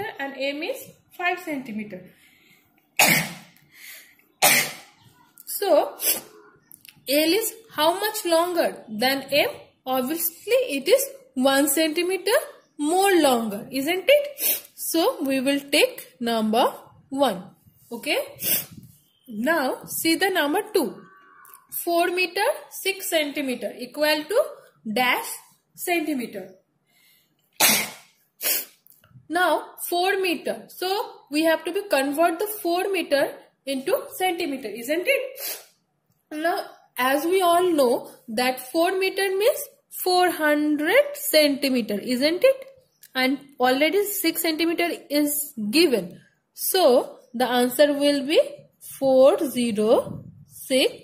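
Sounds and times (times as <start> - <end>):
sharp bursts of breath: 2.1 - 4.2, 14.4 - 14.8, 18.4 - 19.0, 26.8 - 28.8, 35.4 - 35.8
woman coughing: 3.0 - 3.5, 4.4 - 5.0, 27.6 - 28.1.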